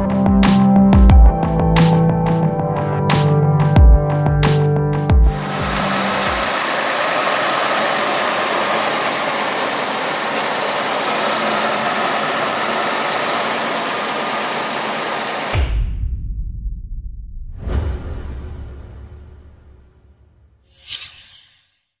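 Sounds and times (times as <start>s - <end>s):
music: 0.0s - 6.5s, 15.6s - 20.2s
pickup engine idling: 5.3s - 15.6s.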